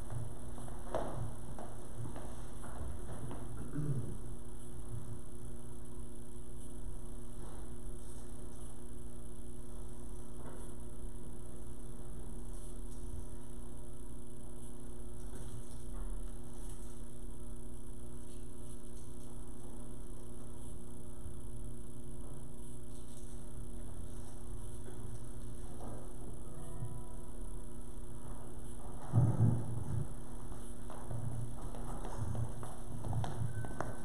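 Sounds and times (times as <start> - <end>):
electrical mains hum: 0.0 - 34.0
faint room noise: 0.0 - 34.0.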